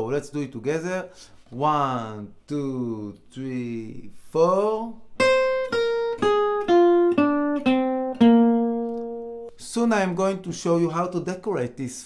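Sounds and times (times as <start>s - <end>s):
acoustic guitar picked notes: 4.9s - 9.6s.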